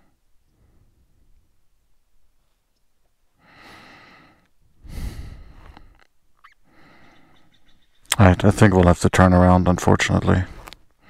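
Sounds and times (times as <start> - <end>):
person breathing heavily: 3.4 - 6.0, 6.6 - 7.5.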